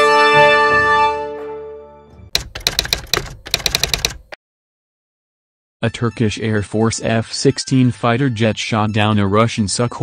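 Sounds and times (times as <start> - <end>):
typewriter key clicks: 2.4 - 4.4.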